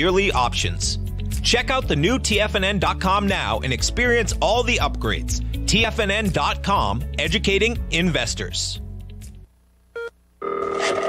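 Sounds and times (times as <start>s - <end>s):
background music: 0.0s - 9.5s
telephone ringing: 10.0s - 11.0s.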